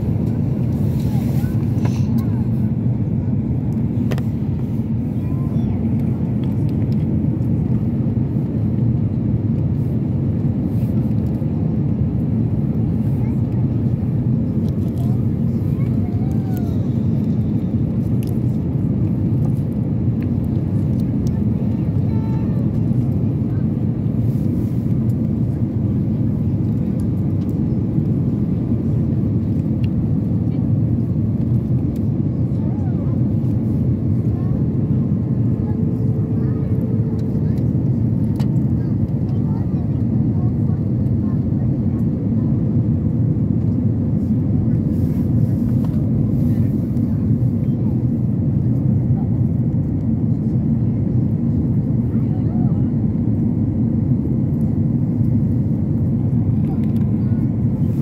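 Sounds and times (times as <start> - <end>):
airliner cabin jet engine rumble: 0.0 - 58.0.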